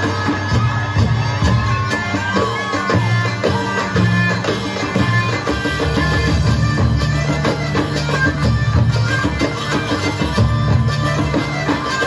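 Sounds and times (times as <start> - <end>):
live band music: 0.0 - 12.0
steady drum beat: 0.0 - 12.0.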